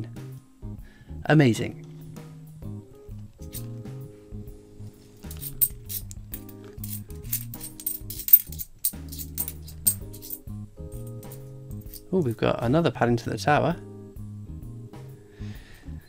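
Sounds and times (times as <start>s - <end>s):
lounge music: 0.0s - 16.0s
coins clinking together: 3.4s - 3.7s, 5.2s - 12.1s.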